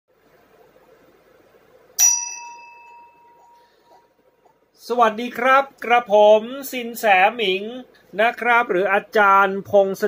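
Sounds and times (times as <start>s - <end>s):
small metal bell ringing: 2.0s - 3.8s.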